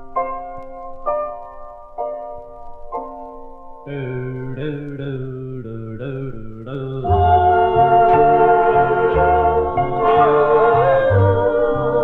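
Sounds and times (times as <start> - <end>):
vocal group wordless harmony: 4.5 - 12.0.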